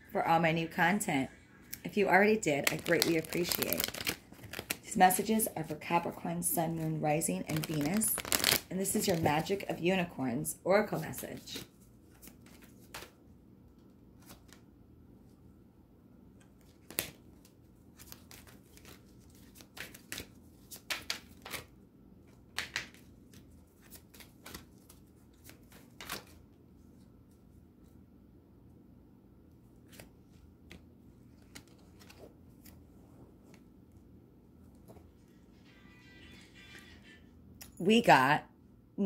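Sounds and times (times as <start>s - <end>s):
low room hum: 0.0s - 39.0s
card deck being shuffled: 2.5s - 5.8s, 7.4s - 9.6s.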